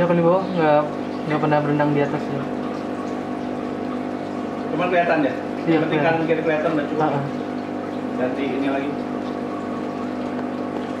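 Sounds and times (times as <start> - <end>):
air pump humming: 0.0 - 11.0.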